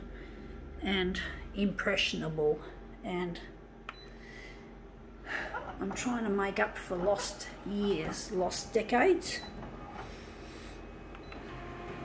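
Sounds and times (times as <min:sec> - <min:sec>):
copier humming: 0:02.7 - 0:12.0
copier printing: 0:06.7 - 0:12.0.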